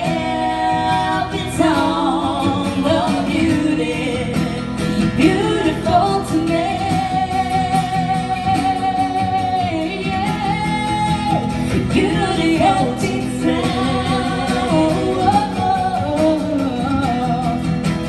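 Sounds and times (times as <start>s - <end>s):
acoustic guitar: 0.0s - 18.0s
two voices singing: 0.0s - 18.0s.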